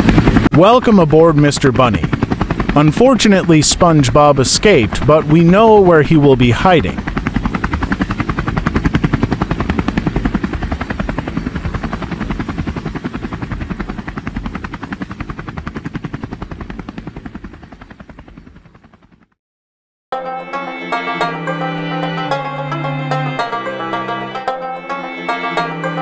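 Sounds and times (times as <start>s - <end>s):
helicopter rotor chopping: 0.0s - 19.4s.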